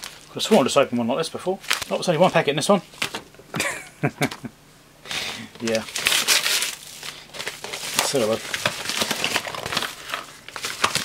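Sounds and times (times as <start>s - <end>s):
envelope and plastic rustling: 0.0s - 3.3s, 5.3s - 11.0s.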